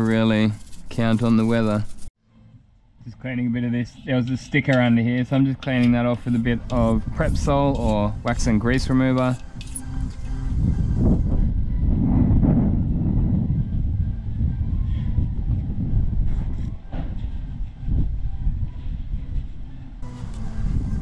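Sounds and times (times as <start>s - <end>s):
wind rumbling on microphone: 6.0s - 21.0s.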